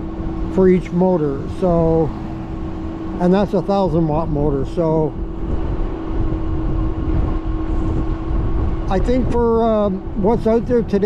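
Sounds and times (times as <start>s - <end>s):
electric motor hum: 0.0s - 11.0s
road rumble: 0.0s - 11.0s
wind on microphone: 0.0s - 11.0s.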